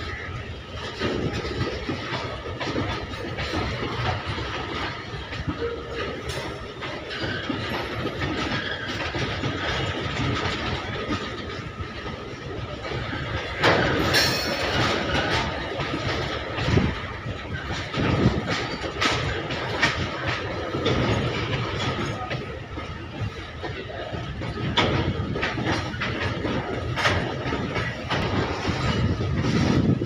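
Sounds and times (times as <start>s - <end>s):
freight train wheels rumbling on rail: 0.0s - 30.0s.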